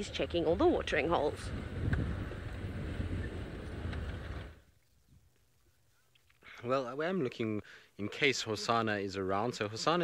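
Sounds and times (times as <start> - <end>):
wind noise on microphone: 0.0 - 5.3.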